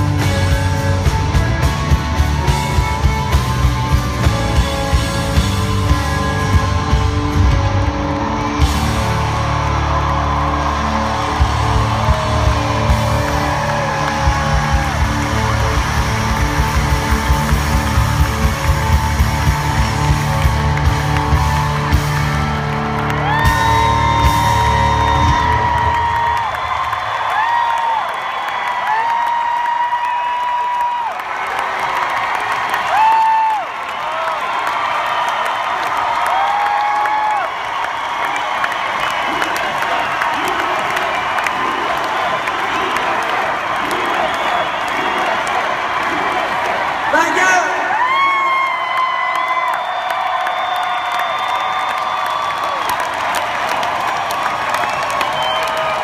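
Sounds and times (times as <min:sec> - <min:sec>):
live rock band playing: 0:00.0 - 0:26.3
crowd cheering and whooping: 0:00.0 - 0:56.0.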